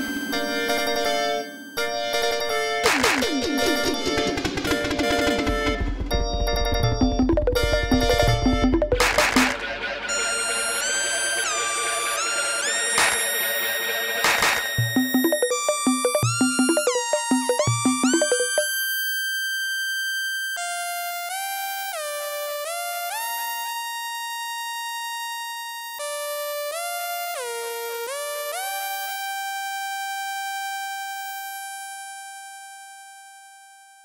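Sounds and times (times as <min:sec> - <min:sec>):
high steady synthesizer tone: 0:06.9 - 0:09.6, 0:14.8 - 0:18.7.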